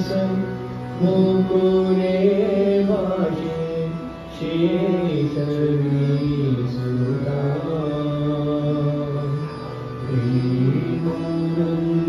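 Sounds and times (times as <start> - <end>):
men singing devotional song: 0.0 - 9.4, 10.1 - 12.0
harmonium: 0.0 - 12.0.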